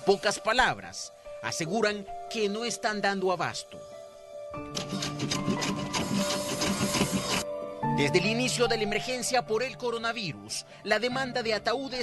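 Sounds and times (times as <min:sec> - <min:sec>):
background music: 0:00.0 - 0:12.0
hand tool rasping across wood: 0:04.8 - 0:07.5.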